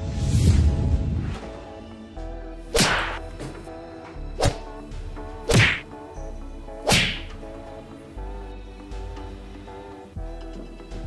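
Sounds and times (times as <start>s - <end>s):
background music: 0.0s - 11.0s
loud whip-crack whacks: 2.7s - 3.2s, 4.4s - 4.6s, 5.5s - 5.9s, 6.8s - 7.3s.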